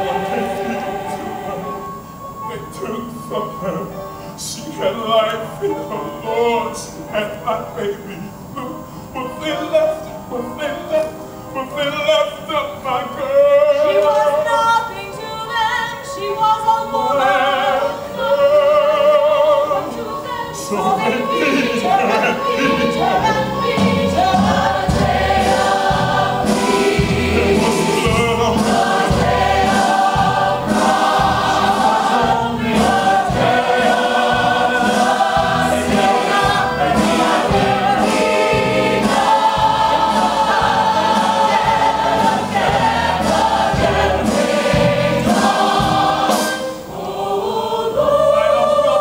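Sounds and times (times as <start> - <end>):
choir singing gospel: 0.0 - 49.0.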